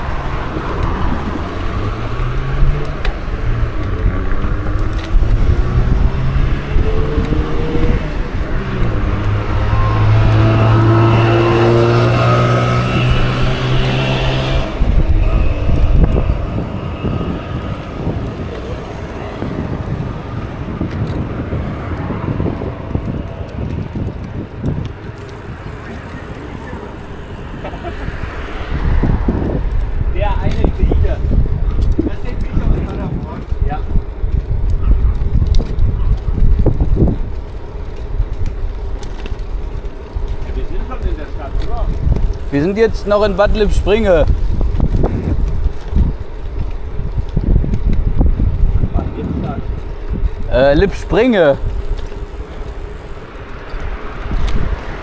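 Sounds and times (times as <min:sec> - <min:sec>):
low pitched drone: 0:00.0 - 0:19.3
road traffic: 0:00.0 - 0:55.0
wind on microphone: 0:00.0 - 0:55.0.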